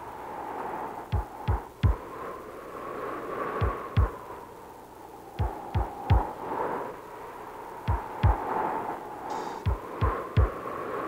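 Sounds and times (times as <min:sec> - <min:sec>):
steady hum: 0:00.0 - 0:11.0
deep heavy thumps: 0:01.2 - 0:02.0, 0:05.4 - 0:06.3, 0:07.9 - 0:08.4, 0:09.7 - 0:10.5.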